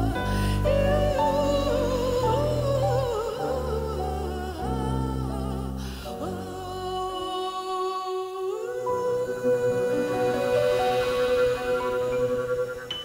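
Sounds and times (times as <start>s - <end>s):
bowed double bass: 0.0s - 7.1s
held sustained tones: 0.0s - 13.0s
woman singing wordless vocals: 0.0s - 13.0s.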